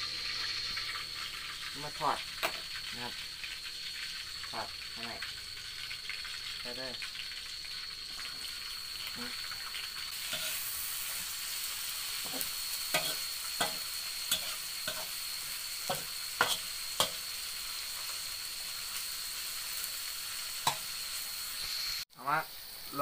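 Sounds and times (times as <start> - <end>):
vegetables sizzling in hot oil: 0.0 - 23.0
spatula scraping and knocking wok: 9.5 - 21.6.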